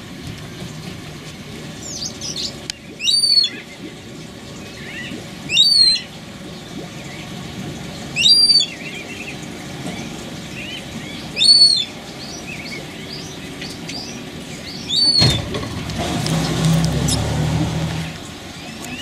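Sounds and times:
soft bird chirps: 0:01.8 - 0:07.4, 0:08.2 - 0:15.4
bird calling loudly: 0:01.9 - 0:03.8, 0:04.7 - 0:06.2, 0:08.1 - 0:09.4, 0:10.6 - 0:15.6.

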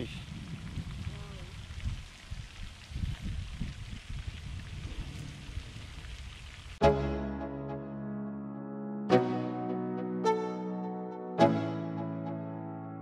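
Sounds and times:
wind buffeting microphone: 0:00.0 - 0:06.8
music: 0:06.8 - 0:13.0.

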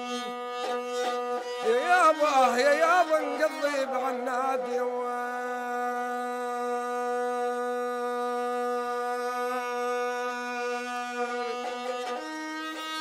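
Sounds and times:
man singing a long note: 0:01.5 - 0:12.2.

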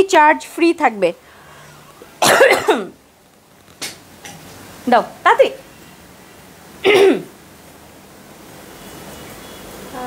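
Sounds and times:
woman coughing: 0:02.2 - 0:03.0, 0:06.8 - 0:07.3.

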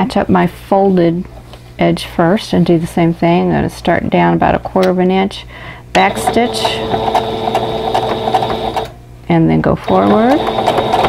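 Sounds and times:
sewing machine motor whine: 0:06.0 - 0:08.9, 0:09.9 - 0:11.0.

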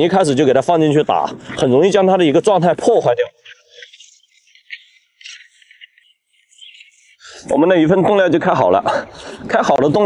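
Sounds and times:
bait rustling against plastic: 0:01.4 - 0:07.2.

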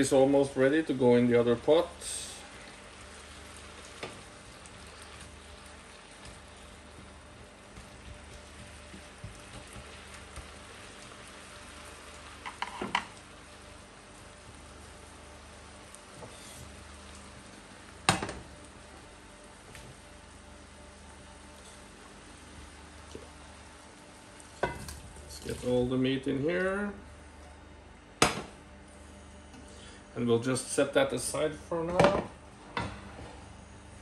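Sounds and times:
meat sizzling in a frying pan: 0:00.0 - 0:25.8.

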